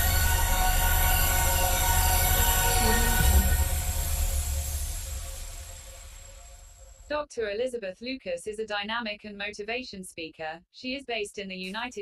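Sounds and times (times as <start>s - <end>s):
electronic drone: 0.0s - 7.1s.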